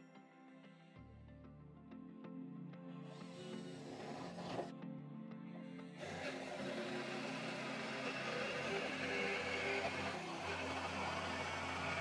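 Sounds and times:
jigsaw motor running: 3.2 - 4.7, 6.0 - 12.0
saw blade rasping through metal: 6.0 - 12.0.

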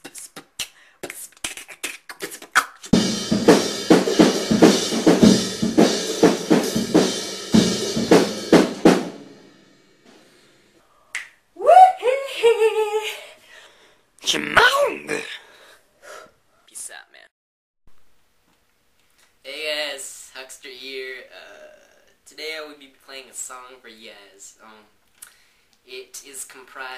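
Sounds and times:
beatboxing rhythm: 0.0 - 3.0
drawn-out vocal sound: 14.2 - 15.8.

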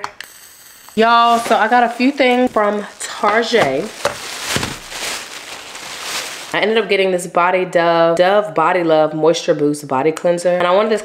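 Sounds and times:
plastic bag rustling: 1.0 - 6.6.

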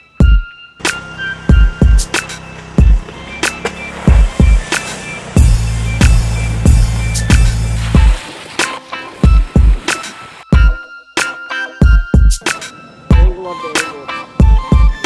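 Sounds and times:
hip-hop backing track: 0.0 - 15.0.

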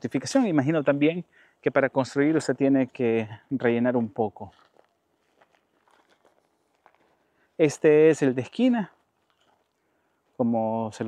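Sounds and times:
footsteps on grass: 2.0 - 11.0.

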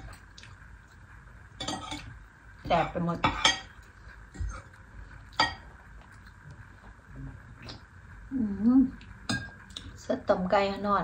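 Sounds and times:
cutlery clinking on ceramic dishes: 1.6 - 2.1, 5.4 - 5.7.

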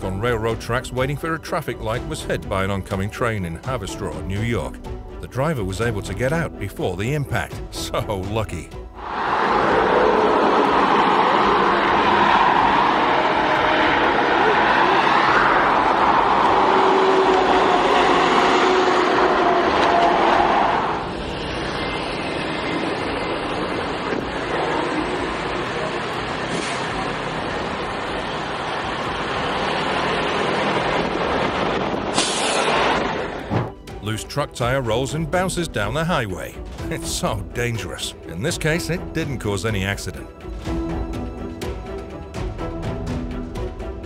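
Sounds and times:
highway traffic rush: 9.0 - 33.8
truck engine drone: 9.0 - 34.0
road noise inside moving car: 21.1 - 33.7.

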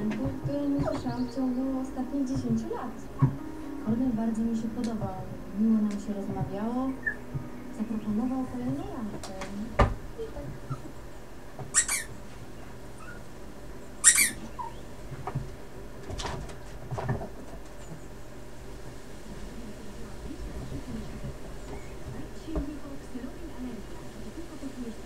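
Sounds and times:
short sharp squeaks: 11.7 - 12.1, 14.0 - 14.8.

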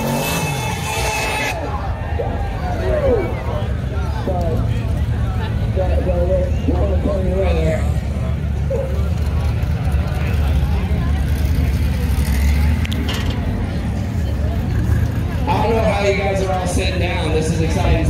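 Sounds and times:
drag car engine rumble: 0.0 - 18.0
spectators' voices: 0.0 - 18.0.

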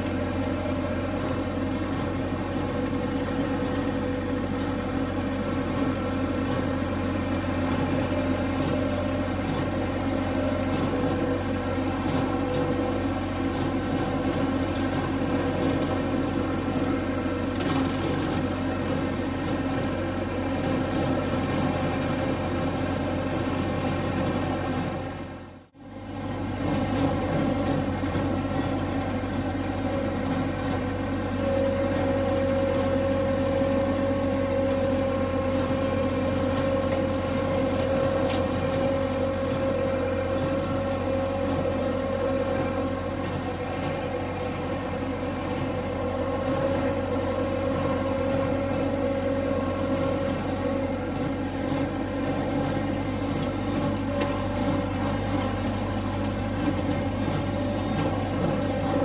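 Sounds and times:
tractor engine running: 0.0 - 59.0.

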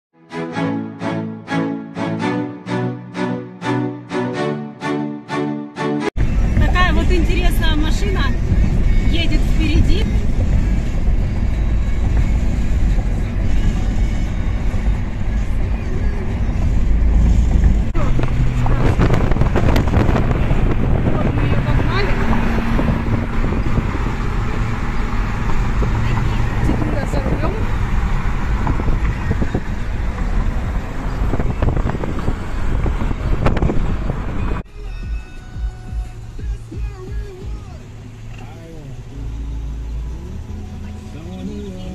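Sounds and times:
music playing: 0.2 - 18.0, 34.4 - 41.9
car road and wind rumble: 6.2 - 41.9.

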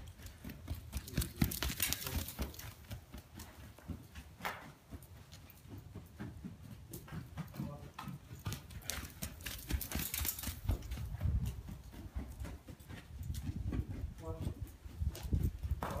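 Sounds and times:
horse hooves thudding on sand: 0.0 - 16.0.

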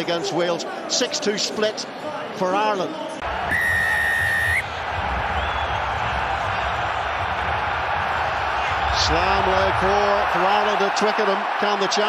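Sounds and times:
stadium crowd cheering: 3.1 - 12.0
referee's whistle blast: 3.5 - 4.7.

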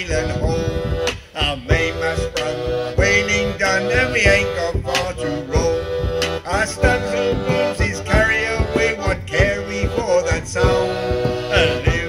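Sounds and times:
accordion chords: 0.0 - 12.0
man singing: 0.0 - 12.0
frame drum beat: 0.1 - 12.0.

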